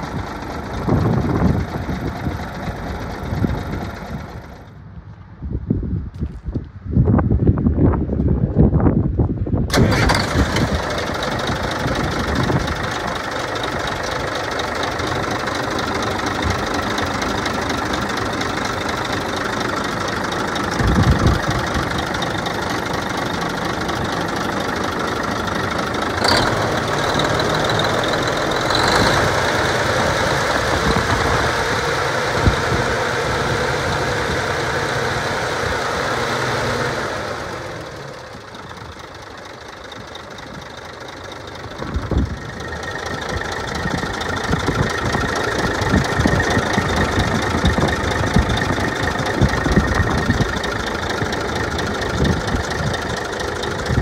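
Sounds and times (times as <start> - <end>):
diesel engine idling: 0.0 - 4.9, 9.7 - 54.0
diesel truck engine starting: 0.0 - 4.9, 9.5 - 54.0.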